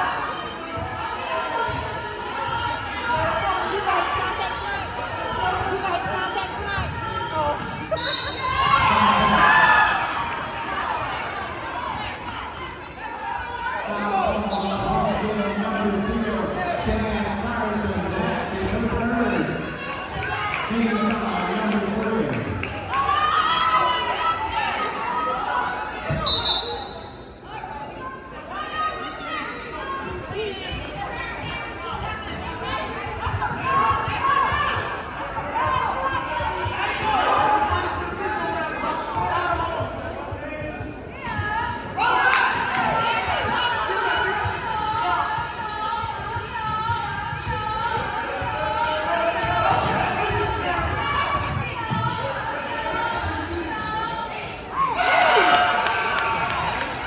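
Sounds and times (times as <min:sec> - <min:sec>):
spectators' voices and calls: 0:00.0 - 0:57.0.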